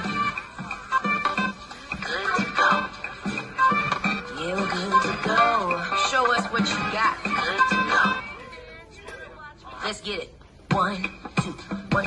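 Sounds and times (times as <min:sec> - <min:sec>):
upbeat pop dance music: 0:00.0 - 0:08.7, 0:10.7 - 0:12.0.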